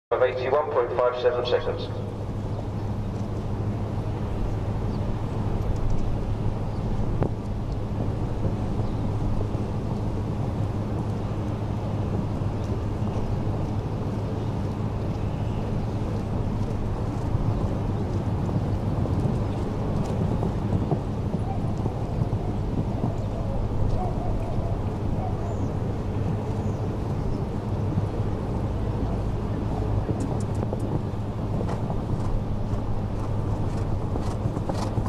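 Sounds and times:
outdoor arena background noise: 0.1 - 35.0
wind buffeting microphone: 0.2 - 35.0.

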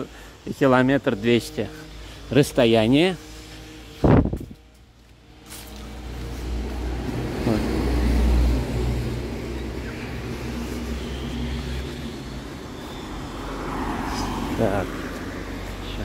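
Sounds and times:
car engine passing by: 5.4 - 16.0.

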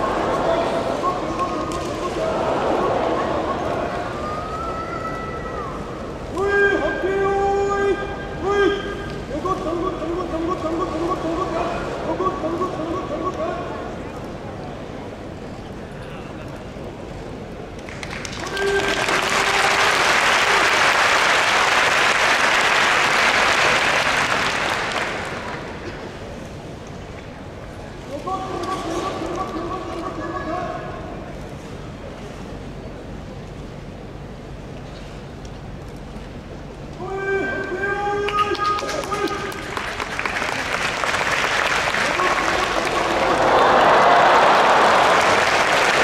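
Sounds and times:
man chanting a drawn-out call: 6.3 - 13.7, 37.0 - 39.5.

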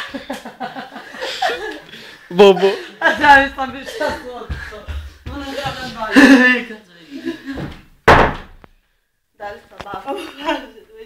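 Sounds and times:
loud bang or slam: 8.0 - 8.6.

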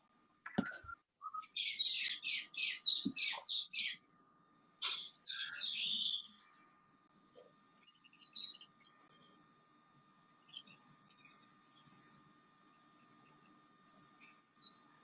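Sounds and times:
bird chirping faintly: 0.6 - 4.1, 4.8 - 9.5, 10.3 - 15.0.

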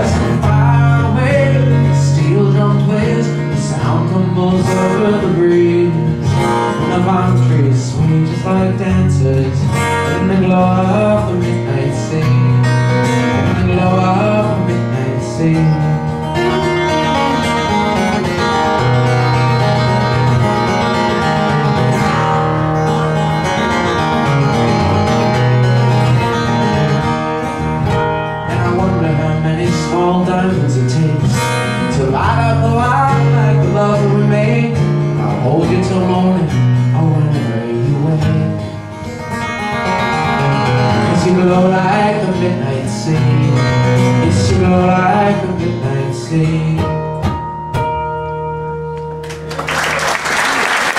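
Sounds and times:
acoustic guitar playing: 0.0 - 50.9.

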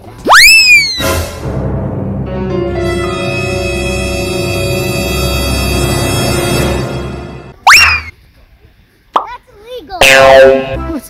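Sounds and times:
background music: 0.9 - 7.6, 10.0 - 11.0.

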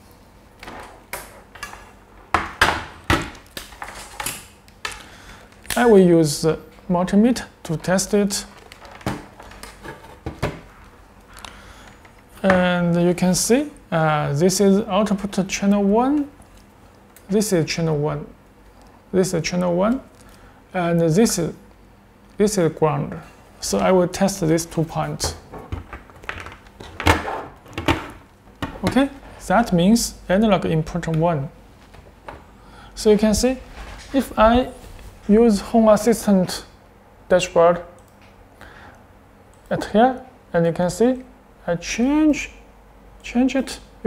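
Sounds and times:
person speaking: 5.7 - 8.6, 12.4 - 16.5, 17.2 - 18.4, 19.1 - 21.7, 22.3 - 25.5, 28.6 - 31.6, 32.9 - 38.0, 39.6 - 42.6.

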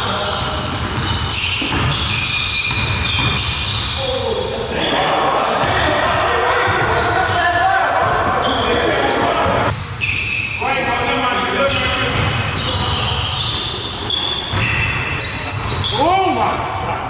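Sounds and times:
players' voices: 3.3 - 17.0.

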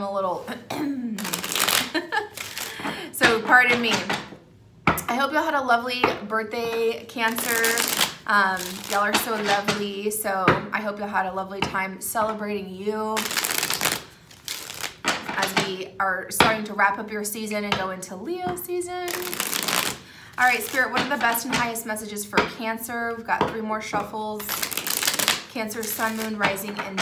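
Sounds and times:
woman's voice: 0.0 - 1.6, 3.0 - 4.2, 5.0 - 13.3, 15.4 - 19.4, 20.4 - 24.6, 25.5 - 27.0
cards being shuffled: 1.2 - 2.9, 7.3 - 9.7, 13.2 - 15.4, 19.1 - 21.3, 24.4 - 27.0.

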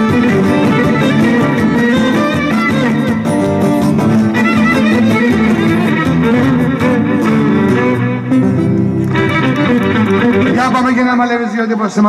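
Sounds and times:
strummed and plucked lute: 0.0 - 11.0
bowed lyra melody: 0.0 - 11.1
electric bass guitar: 0.0 - 11.1.

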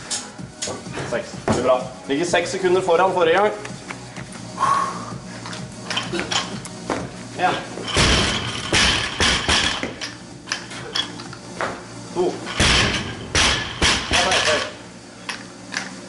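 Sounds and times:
barbell bouncing: 7.9 - 11.1, 12.6 - 14.7.

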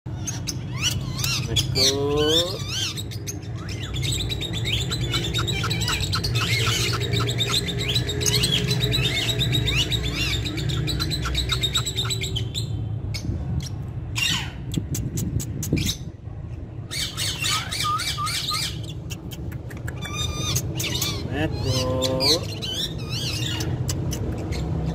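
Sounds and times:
parakeet chirping and squawking: 0.1 - 24.9.

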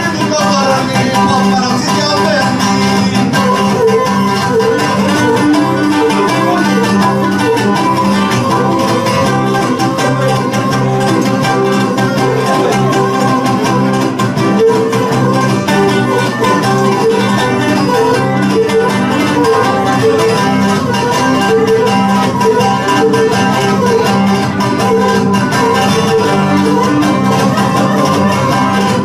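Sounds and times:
bowed lyra melody: 0.0 - 29.0
strummed lute: 0.0 - 29.0.

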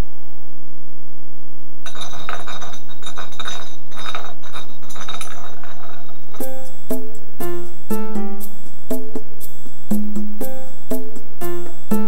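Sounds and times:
glass bottle rattling on floor: 1.9 - 7.0
music with pitched notes: 6.4 - 12.0.

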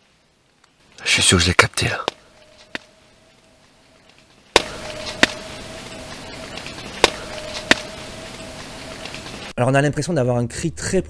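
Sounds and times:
background hiss: 0.0 - 10.9
distant steady drone: 2.0 - 9.5.

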